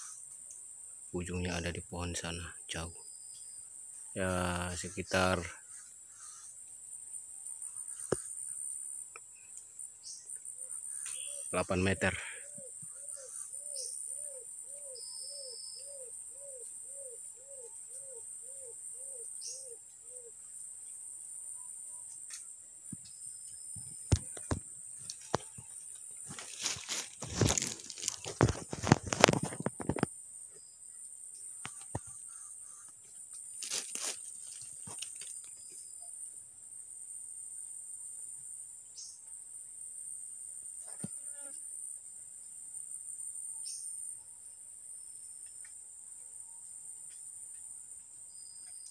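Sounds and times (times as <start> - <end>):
insects buzzing: 0.0 - 48.9
phone rustling through foliage: 24.2 - 30.0, 33.5 - 35.6.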